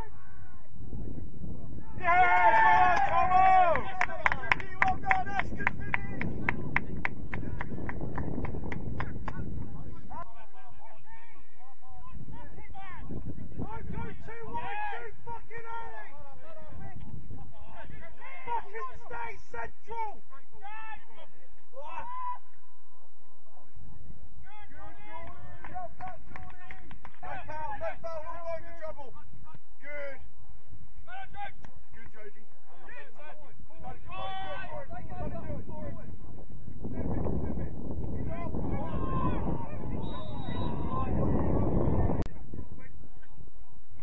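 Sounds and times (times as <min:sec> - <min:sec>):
wind buffeting microphone: 0:00.0 - 0:19.3, 0:31.8 - 0:44.0
distant shouts and calls: 0:17.6 - 0:23.2, 0:31.0 - 0:35.4.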